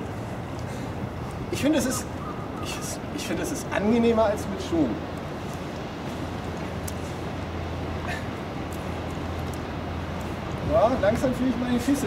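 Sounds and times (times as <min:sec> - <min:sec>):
wind noise on microphone: 0:05.0 - 0:12.0.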